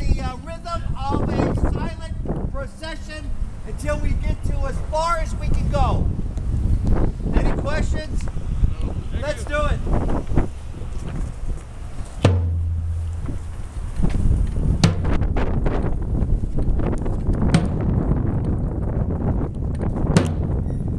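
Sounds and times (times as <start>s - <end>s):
drum beaten with a stick: 12.2s - 13.4s, 14.8s - 15.2s, 20.2s - 20.6s.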